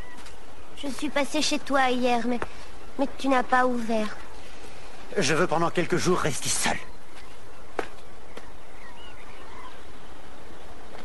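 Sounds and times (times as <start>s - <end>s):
faint bird chirps: 0.0s - 5.3s, 5.9s - 10.8s
outdoor background hiss: 0.0s - 11.0s.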